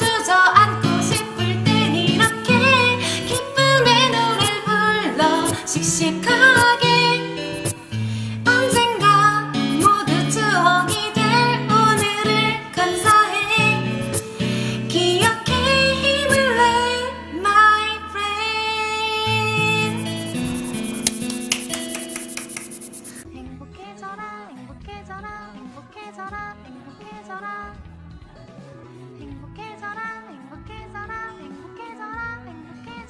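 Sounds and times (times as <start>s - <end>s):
woman singing pop song: 0.0s - 20.2s, 23.2s - 33.0s
karaoke backing track: 0.0s - 33.0s.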